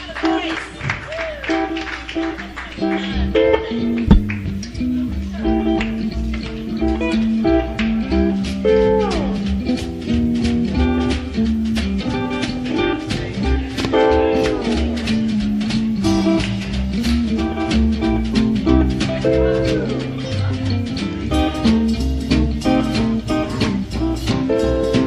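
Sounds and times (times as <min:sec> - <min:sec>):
jazz band playing: 0:01.4 - 0:25.0.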